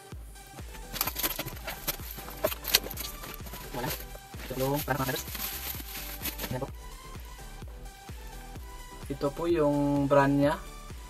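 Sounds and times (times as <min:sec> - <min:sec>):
paper mailer tearing: 0:00.7 - 0:06.6.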